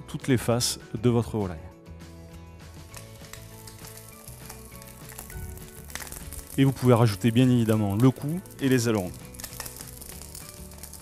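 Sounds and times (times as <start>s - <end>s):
soft background music: 0.0s - 11.0s
chicken sizzling in hot oil: 2.8s - 11.0s.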